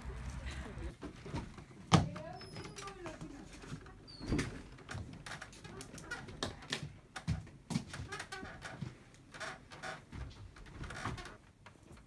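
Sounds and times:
wooden bed creaking and knocking: 0.9 - 12.0.

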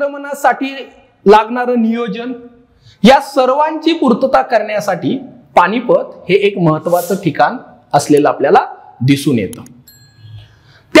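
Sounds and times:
man talking: 0.0 - 9.8
short high electronic beep: 9.9 - 10.6.

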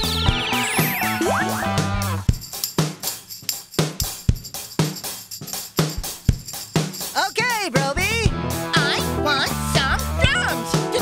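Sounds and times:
drum kit playing a steady beat: 0.0 - 11.0.

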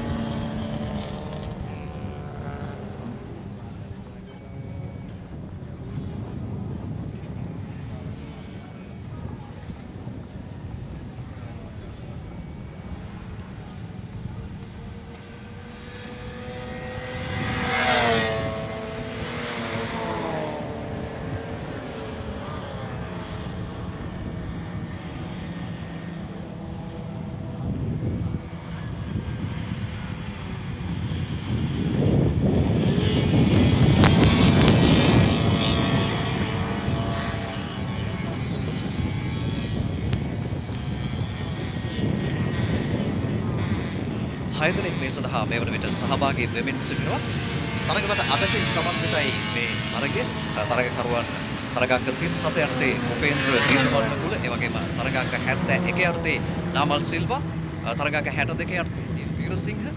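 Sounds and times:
race car engines roaring past: 0.0 - 59.9.

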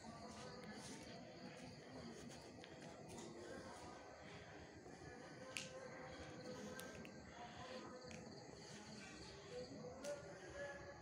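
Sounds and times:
faint distant music: 0.0 - 11.0.

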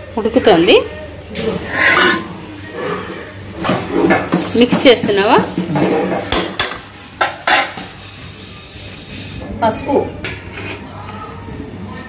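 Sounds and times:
spoon stirring in metal pan: 1.4 - 2.4.

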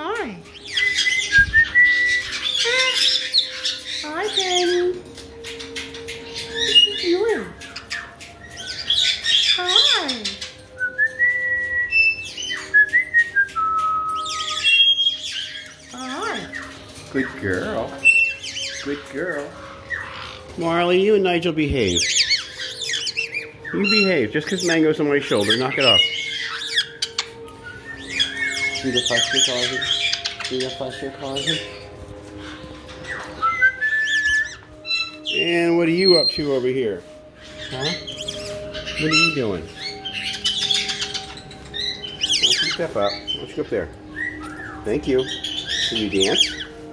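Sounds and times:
parrot whistling: 0.0 - 5.0, 5.6 - 46.9
parrot high chirps: 0.0 - 20.9, 21.9 - 36.7, 37.3 - 46.9
long whistled notes: 0.7 - 2.4, 10.7 - 15.6, 31.4 - 46.9.

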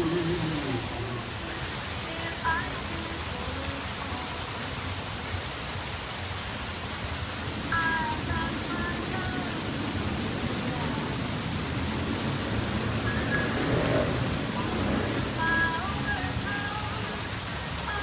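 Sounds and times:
indistinct voices: 0.0 - 4.1.

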